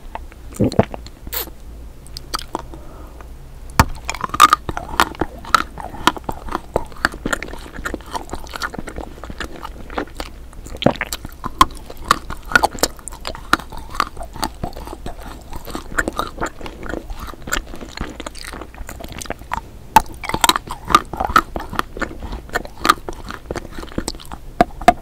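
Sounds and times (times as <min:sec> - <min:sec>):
wet mouth clicks: 0:00.1 - 0:02.8, 0:03.8 - 0:25.0
chewing crunches: 0:02.1 - 0:02.9, 0:03.7 - 0:25.0.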